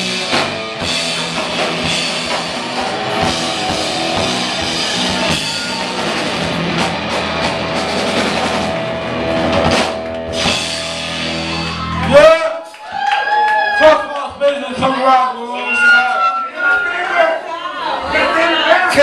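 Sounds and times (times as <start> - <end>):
punk rock band playing live: 0.0 - 12.2.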